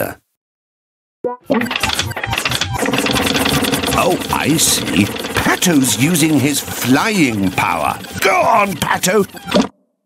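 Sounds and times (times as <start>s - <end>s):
cartoon propeller motor whirring: 1.6s - 9.7s
steady hum: 2.8s - 9.6s.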